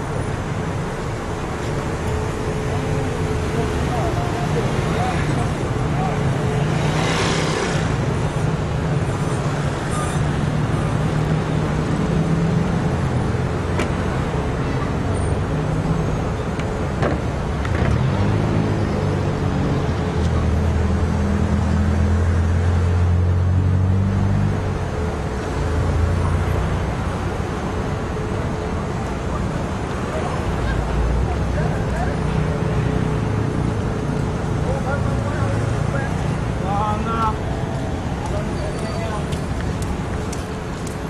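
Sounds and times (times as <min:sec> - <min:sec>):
slow street traffic: 0:00.0 - 0:41.0.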